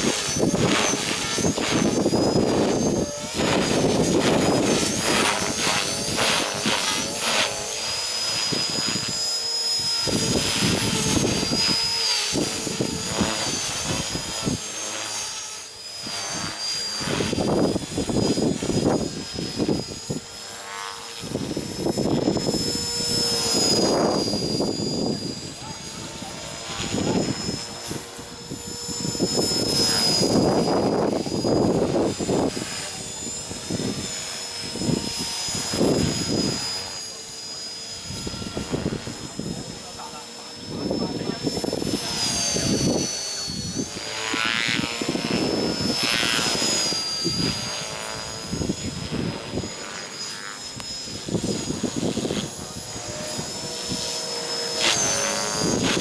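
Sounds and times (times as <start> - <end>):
model helicopter rotor whine: 0.0 - 56.0.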